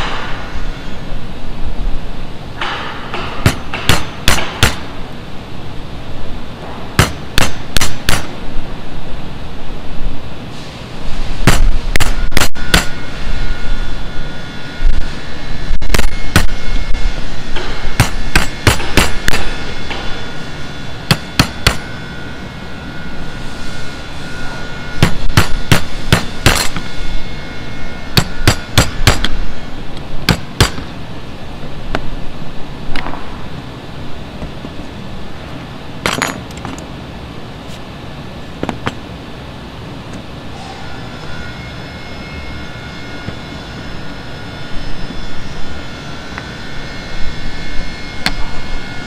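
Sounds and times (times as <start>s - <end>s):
hammer tapping steel punch: 2.6s - 4.9s, 7.0s - 8.4s, 11.5s - 13.0s, 18.0s - 19.5s, 21.1s - 21.9s, 25.0s - 26.8s, 28.2s - 29.4s, 30.3s - 30.9s.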